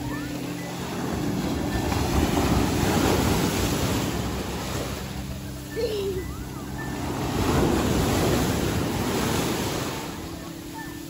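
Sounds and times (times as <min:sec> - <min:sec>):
ocean wave breaking: 0:00.0 - 0:11.0.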